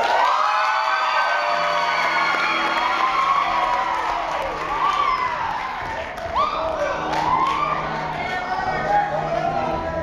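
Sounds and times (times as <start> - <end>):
voices whooping and yelling: 0.0 - 9.7.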